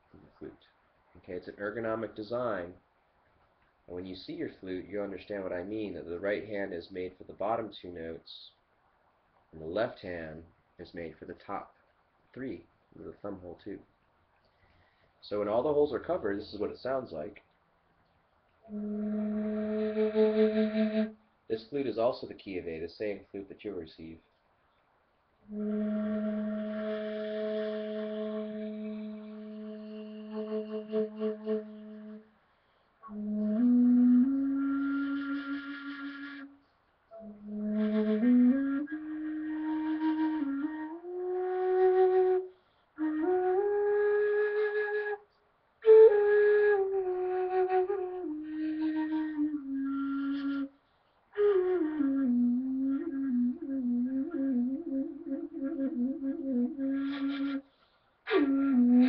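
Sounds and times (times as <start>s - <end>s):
end-blown flute playing: 37.1s - 45.2s, 51.4s - 57.6s.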